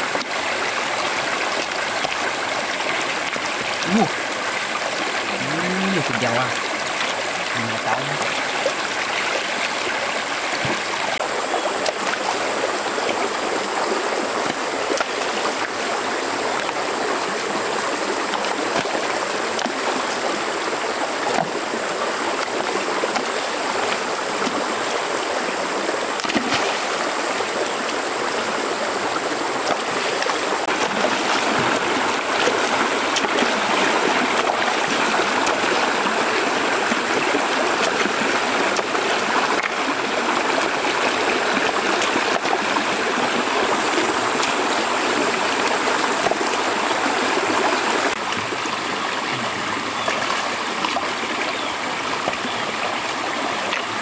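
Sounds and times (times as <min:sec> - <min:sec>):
stream rushing over rocks: 0:00.0 - 0:54.0
splashes of stones in water: 0:26.2 - 0:27.0, 0:29.6 - 0:36.0.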